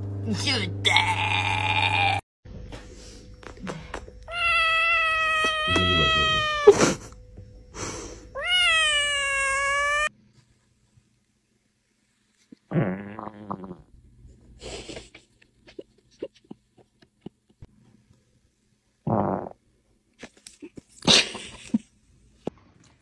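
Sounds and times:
kitten meowing: 4.3 - 6.7, 8.4 - 10.1.

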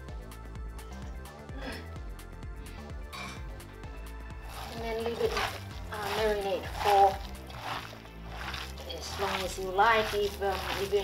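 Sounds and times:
background music: 0.0 - 11.0
hand squelching minced meat: 4.4 - 11.0
person talking: 4.6 - 7.3, 8.8 - 11.0.

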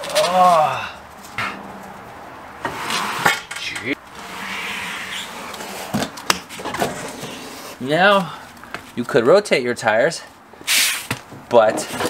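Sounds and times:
metal scraping: 2.6 - 7.8.

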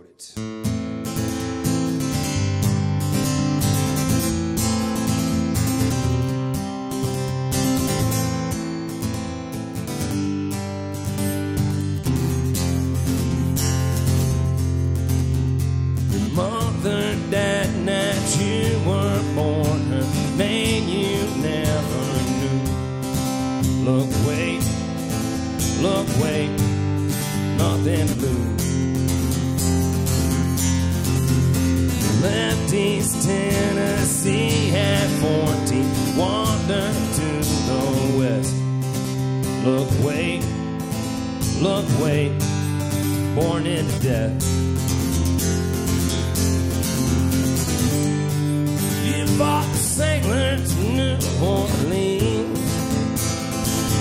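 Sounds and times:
man singing: 0.0 - 0.5, 16.1 - 28.8, 32.0 - 38.8, 39.5 - 40.7, 41.4 - 44.5, 48.8 - 53.2
acoustic guitar strumming: 0.3 - 54.0.

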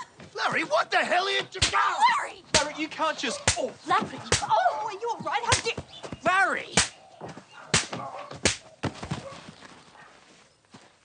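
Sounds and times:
sharp slap-like cracks: 3.5 - 3.7, 6.7 - 7.0, 7.7 - 8.7.

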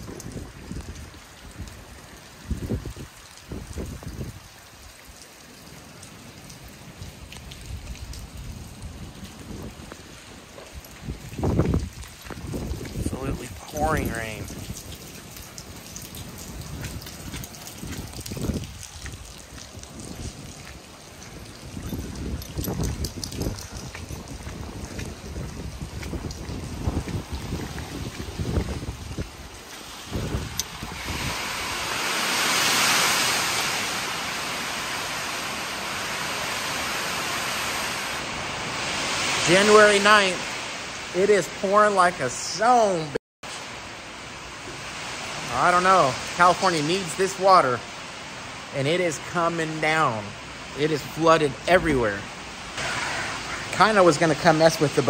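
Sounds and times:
wind buffeting microphone: 0.0 - 4.5, 7.4 - 15.0, 16.1 - 32.6
rain falling: 0.0 - 55.0.

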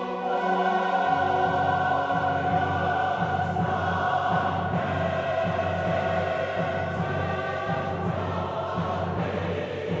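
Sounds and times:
mixed chorus singing: 0.0 - 10.0
orchestra: 0.0 - 10.0.

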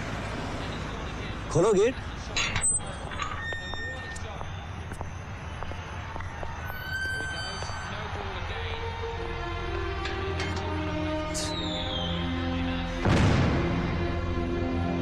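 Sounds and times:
low ambient hum: 0.0 - 15.0
background music score: 8.0 - 15.0.

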